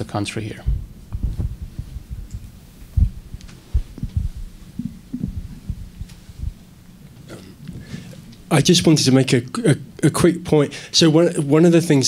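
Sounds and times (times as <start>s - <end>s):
sound system hum: 0.0s - 11.7s
microphone handling thumps: 0.6s - 6.7s.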